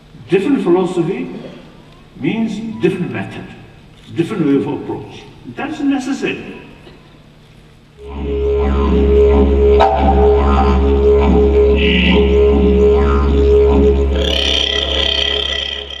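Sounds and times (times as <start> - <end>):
didgeridoo drone: 8.0 - 16.0.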